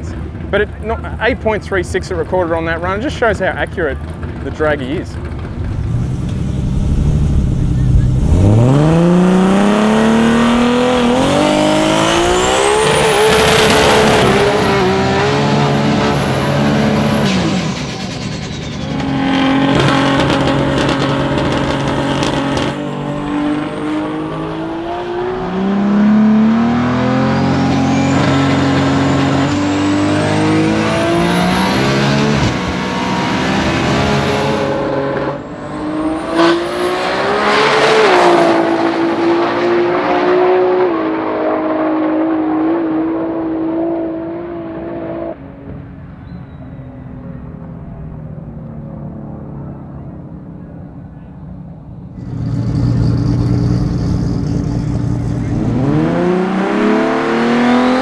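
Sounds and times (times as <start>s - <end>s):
drag car engine revving: 3.6s - 44.3s, 52.1s - 58.0s
high turbo whine: 4.0s - 58.0s.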